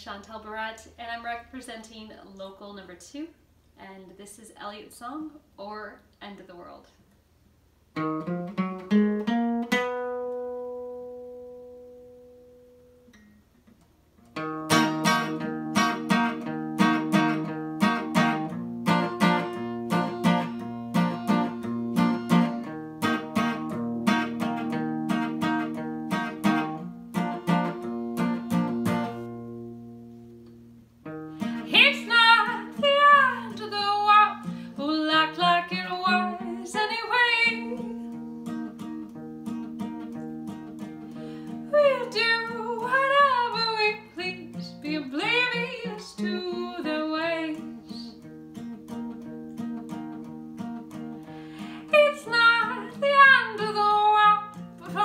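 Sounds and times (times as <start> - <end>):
acoustic guitar chords: 7.9 - 55.0
woman singing: 31.6 - 38.2, 41.7 - 48.2, 51.9 - 55.0.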